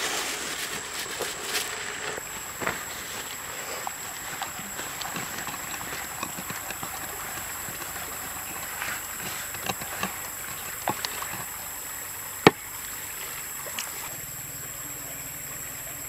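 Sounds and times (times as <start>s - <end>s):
wooden pestle pounding in mortar: 4.4s - 11.5s.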